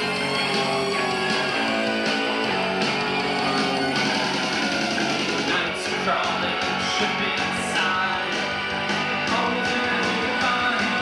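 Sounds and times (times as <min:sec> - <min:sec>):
live rock band playing: 0:00.0 - 0:11.0
strummed electric guitar: 0:00.0 - 0:11.0.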